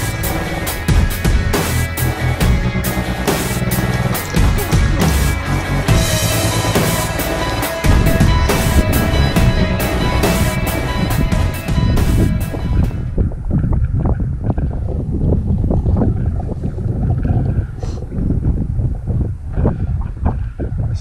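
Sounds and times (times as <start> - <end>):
background music: 0.0 - 13.2
wind buffeting microphone: 0.0 - 21.0.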